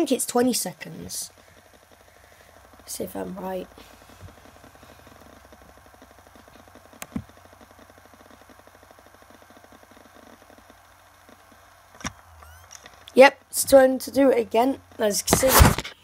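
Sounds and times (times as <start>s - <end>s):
hard drive ticking and whirring: 0.0s - 16.0s.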